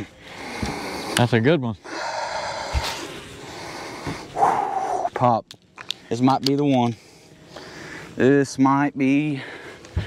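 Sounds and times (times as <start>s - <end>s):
man breathing hard: 0.0s - 1.2s, 1.8s - 5.1s, 7.0s - 8.2s, 9.3s - 10.0s.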